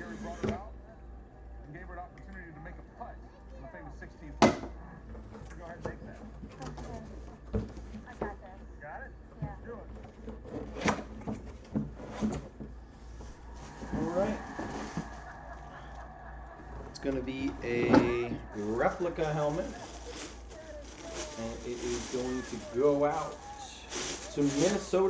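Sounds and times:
faint tv voices: 0.0 - 25.0
plastic bag rustling: 9.9 - 25.0.

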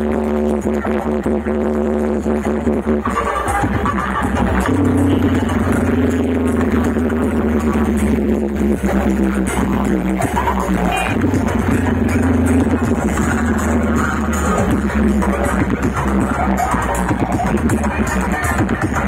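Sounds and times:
electronic dance music with heavy bass: 0.0 - 19.0.

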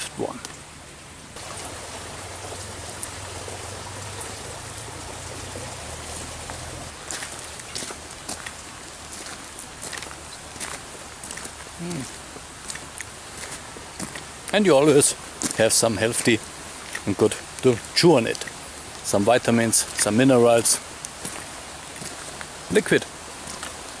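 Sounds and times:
man humming: 11.8 - 12.1.

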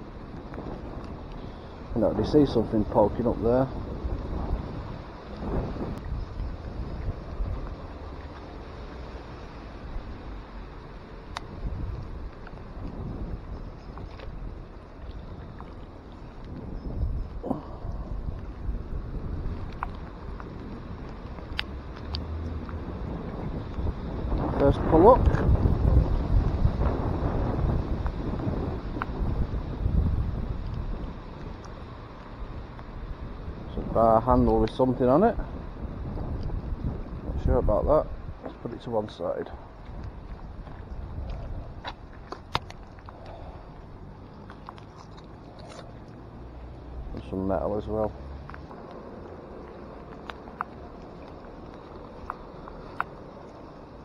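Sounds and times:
wind buffeting microphone: 0.0 - 10.4, 11.3 - 54.0
heavy rain on water: 3.8 - 13.5, 22.3 - 33.7.

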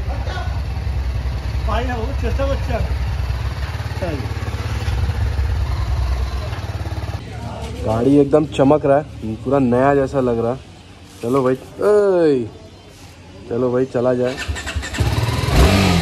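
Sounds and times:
motorcycle engine idling: 0.0 - 7.2.

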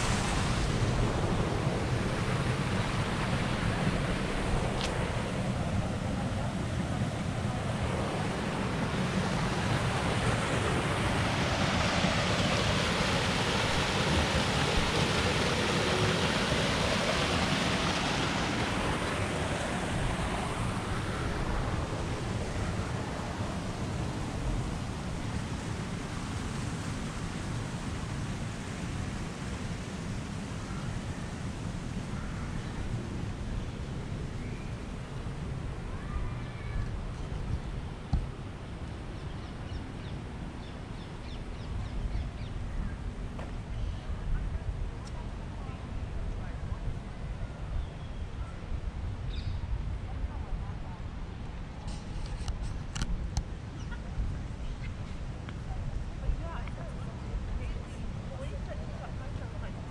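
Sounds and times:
rushing water: 0.0 - 59.9
wind rumble on microphone: 0.0 - 59.9.

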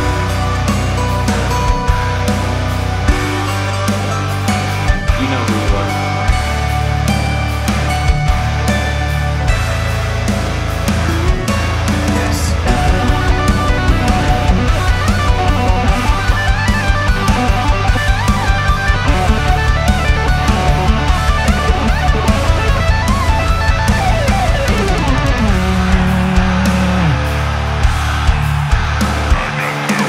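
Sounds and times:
heavy metal electric guitar: 0.0 - 30.0
fast steady beat: 12.6 - 30.0.

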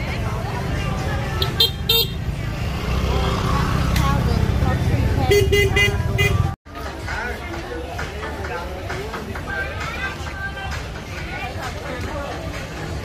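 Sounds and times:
crowd chatter: 0.0 - 13.0
vehicle horn tooting: 1.4 - 2.2, 5.3 - 6.6.

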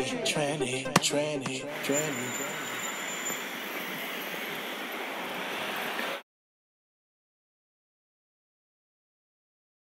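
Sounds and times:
city traffic noise: 1.4 - 6.2.

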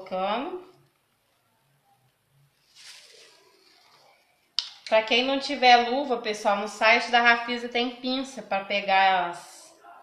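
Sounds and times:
woman speaking: 0.0 - 0.8, 4.9 - 9.8
plastic glove rustling: 2.5 - 4.5.

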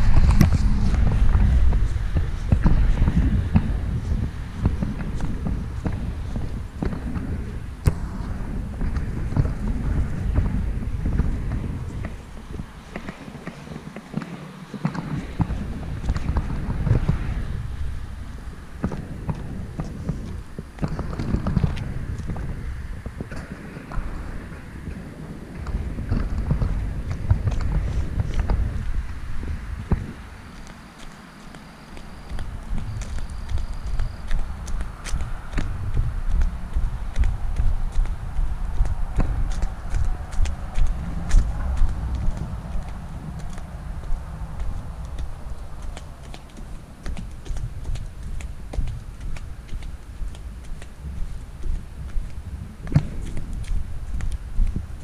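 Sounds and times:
footsteps on grass: 0.0 - 24.2, 25.8 - 55.0
low microphone rumble: 0.0 - 55.0.

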